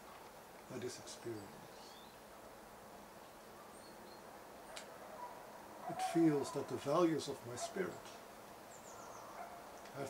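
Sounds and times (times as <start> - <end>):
low steady hiss: 0.0 - 10.0
faint high bird chirps: 1.4 - 2.2.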